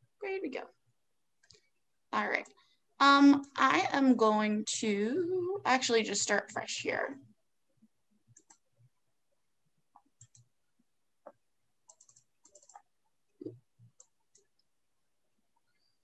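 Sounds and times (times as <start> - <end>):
computer mouse clicks: 1.4 - 1.7, 8.2 - 8.8, 10.0 - 10.5, 11.3 - 14.7.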